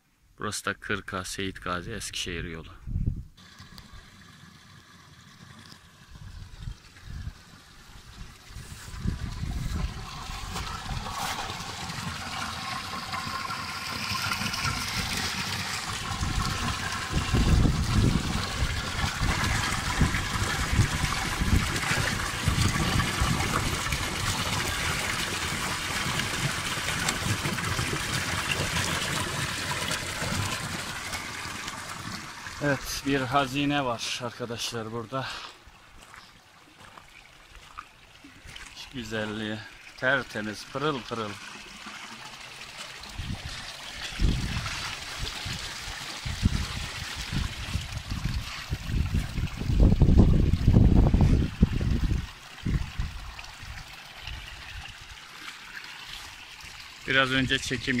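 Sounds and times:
fountain water splashing into trough: 3.4s - 34.8s, 36.7s - 58.0s.

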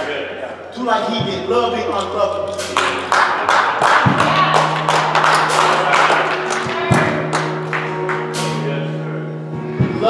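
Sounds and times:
low sustained musical note: 1.1s - 10.0s
congregation clapping: 2.0s - 8.6s.

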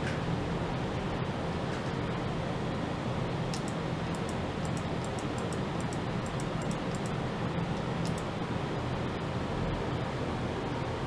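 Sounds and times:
machine hum and hiss: 0.0s - 11.0s.

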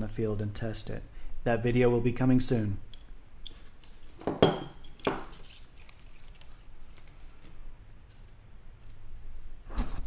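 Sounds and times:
rustling and scraping: 3.5s - 9.0s.

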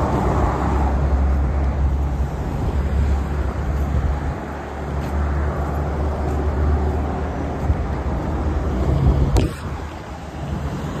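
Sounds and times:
low rumble of passing cars: 0.0s - 11.0s.

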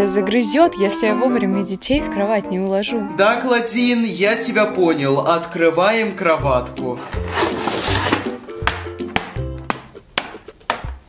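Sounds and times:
background music: 0.0s - 11.0s
cardboard scraping and tearing: 7.0s - 8.4s.

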